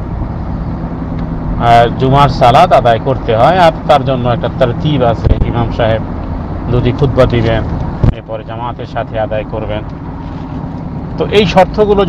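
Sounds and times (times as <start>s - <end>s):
man speaking: 1.6s - 6.0s, 6.7s - 9.8s, 11.2s - 12.0s.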